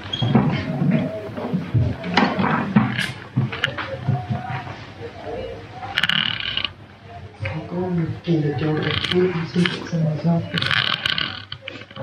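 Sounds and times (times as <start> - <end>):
indistinct talking: 0.0 - 12.0.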